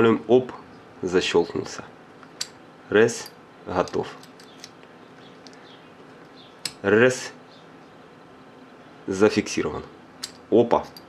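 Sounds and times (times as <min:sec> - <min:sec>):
light metal clicks: 0:02.2 - 0:02.6, 0:03.2 - 0:06.8, 0:10.2 - 0:11.0.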